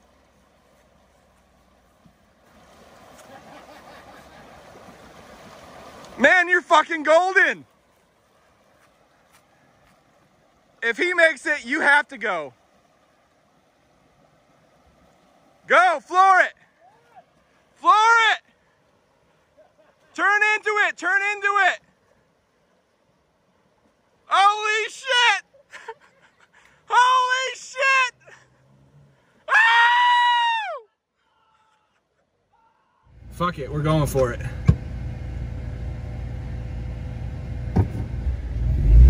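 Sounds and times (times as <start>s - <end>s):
river flowing: 0.0s - 39.0s
man yelling high-pitched: 6.2s - 7.6s, 15.7s - 18.5s, 20.1s - 21.8s, 24.3s - 25.5s, 26.9s - 28.4s, 29.5s - 30.8s.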